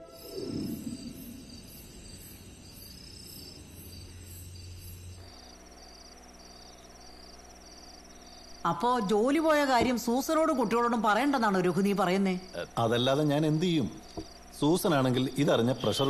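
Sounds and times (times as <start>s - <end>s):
crickets chirping: 0.0s - 16.0s
low steady hum: 0.0s - 16.0s.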